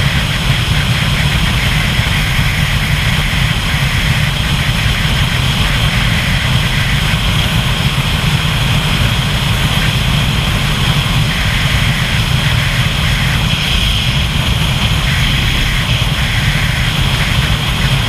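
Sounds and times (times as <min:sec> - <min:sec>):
deep constant rumble: 0:00.0 - 0:18.0
hiss: 0:00.0 - 0:18.0
wind and road noise: 0:00.0 - 0:18.0.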